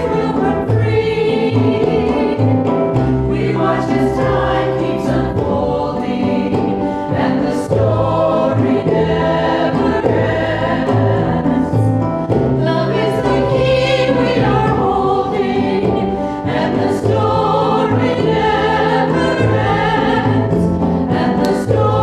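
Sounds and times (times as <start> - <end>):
ensemble singing: 0.0 - 22.0
instrumental accompaniment: 0.0 - 22.0.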